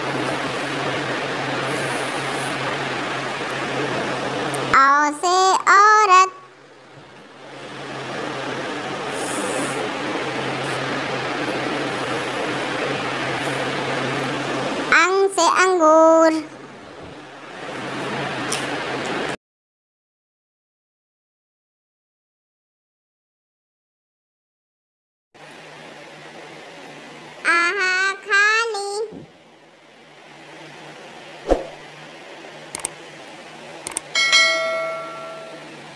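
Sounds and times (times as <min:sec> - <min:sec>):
hair dryer running: 0:00.0 - 0:04.7, 0:07.0 - 0:14.9
faint hiss and hum: 0:00.0 - 0:19.3
child reciting sing-song: 0:04.7 - 0:06.5, 0:14.9 - 0:16.5, 0:27.4 - 0:29.3.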